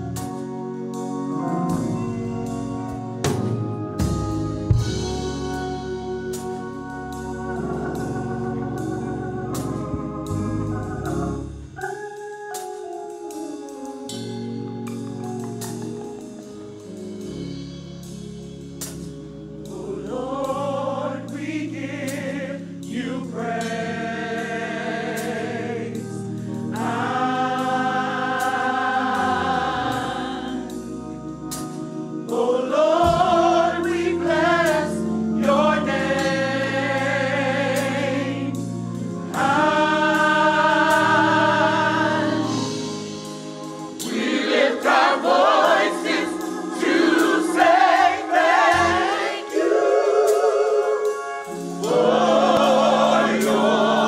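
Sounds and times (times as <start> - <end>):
low sustained accompaniment: 0.0 - 11.8
gospel choir singing: 0.0 - 54.0.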